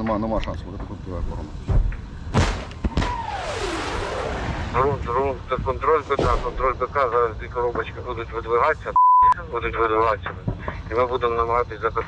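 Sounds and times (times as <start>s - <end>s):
lingering rumble: 0.7s - 8.9s
sharp gunfire bangs: 2.3s - 4.2s, 6.1s - 6.9s.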